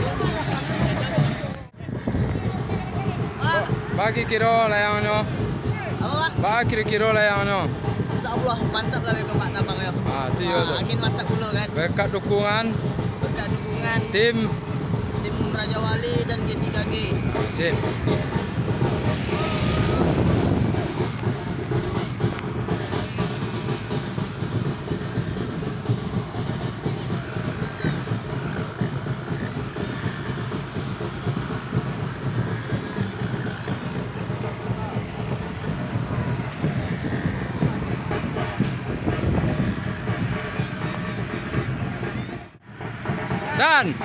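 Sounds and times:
crowd voices outdoors: 0.0 - 44.0
music: 0.0 - 44.0.

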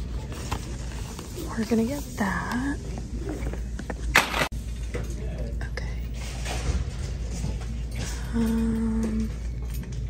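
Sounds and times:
low shop background hum: 0.0 - 10.0.

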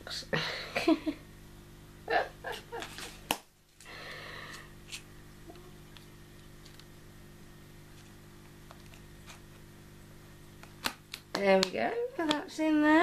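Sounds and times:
steady low hum: 0.0 - 13.0.

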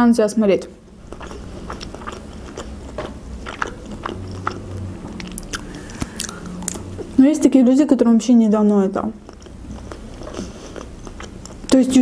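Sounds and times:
person chewing: 1.0 - 7.2, 9.2 - 11.8.

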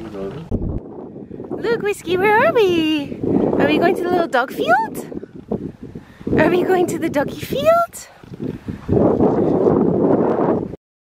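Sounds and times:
wind buffeting microphone: 0.0 - 10.8.

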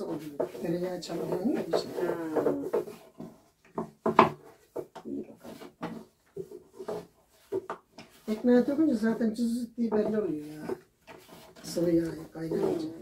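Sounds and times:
rolling pin rubbing and knocking: 0.0 - 13.0.

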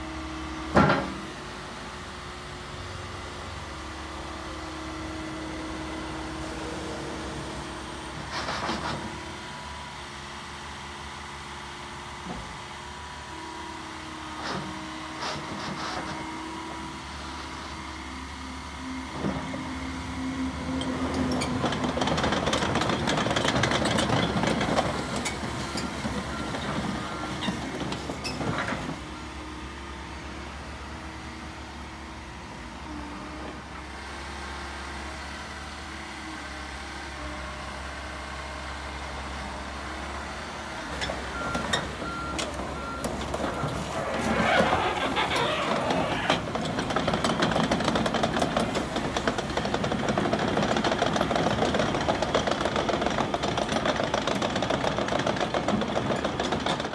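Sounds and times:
excavator running: 0.0 - 56.9
excavator clattering: 8.1 - 9.4, 18.7 - 29.2, 40.8 - 56.9.

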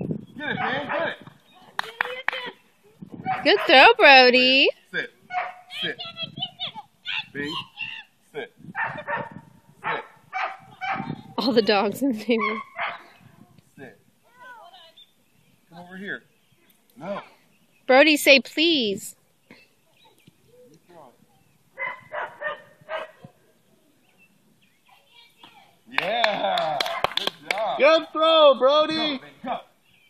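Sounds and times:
dog barking: 0.5 - 1.2, 3.2 - 3.8, 5.3 - 5.7, 8.8 - 11.8, 12.4 - 13.1, 21.8 - 23.3, 26.8 - 27.2.

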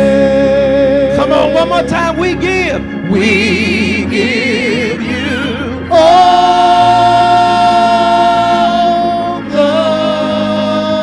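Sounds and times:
gospel singers holding a note: 0.0 - 11.0.

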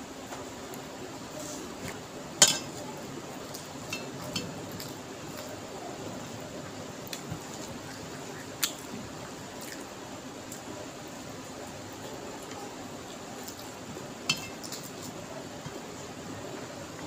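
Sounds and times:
sharp clink on steel plate: 2.4 - 2.7.

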